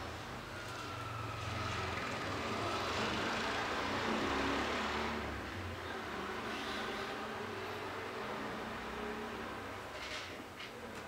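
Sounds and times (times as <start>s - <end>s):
vehicle passing: 1.1s - 9.9s.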